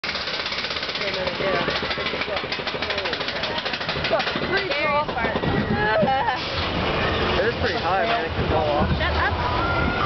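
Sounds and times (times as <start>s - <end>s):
roller coaster lift chain clatter: 0.0s - 10.0s.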